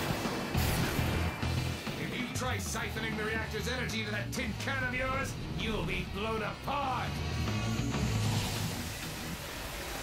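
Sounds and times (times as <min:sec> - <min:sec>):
rushing energy blast: 0:00.0 - 0:01.9.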